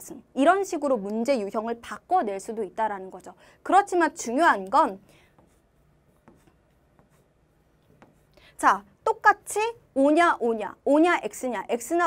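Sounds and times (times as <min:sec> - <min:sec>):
chalk tapping on chalkboard: 0:05.3 - 0:08.4.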